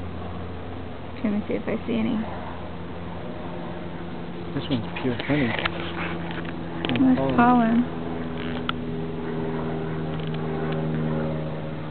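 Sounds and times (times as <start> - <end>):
honeybees humming: 0.0 - 11.9.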